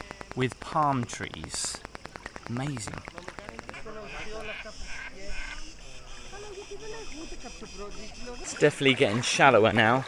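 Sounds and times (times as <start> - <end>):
rapid clicking pulses: 0.0 - 4.7.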